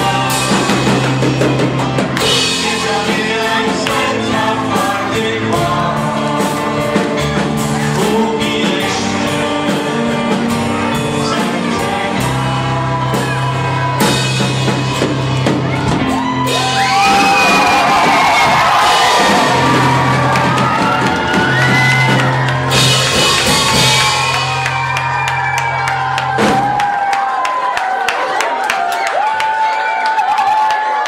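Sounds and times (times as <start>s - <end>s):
people singing: 0.0s - 15.2s
low bass notes: 0.0s - 26.9s
drum kit: 0.0s - 27.7s.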